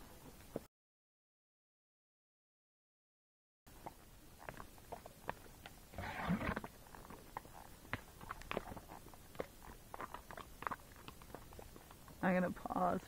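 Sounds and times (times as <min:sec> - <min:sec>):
hooves on dirt trail: 0:03.7 - 0:13.0
rustling scrape: 0:06.0 - 0:06.6.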